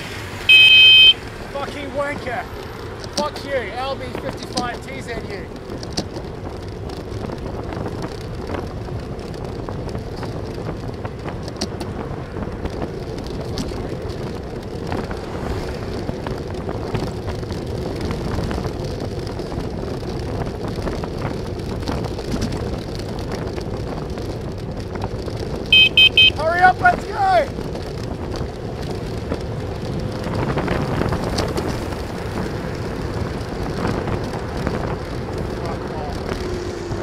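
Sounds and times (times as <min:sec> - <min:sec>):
road noise: 0:00.0 - 0:37.0
wind rush: 0:00.0 - 0:37.0.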